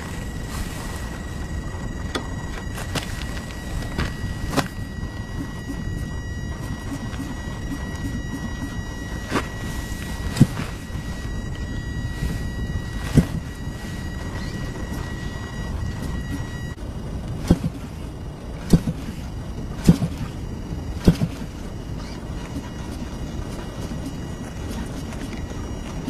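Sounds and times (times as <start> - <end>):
steady low rumble: 0.0 - 26.0
model engine sharp pops: 18.6 - 19.1.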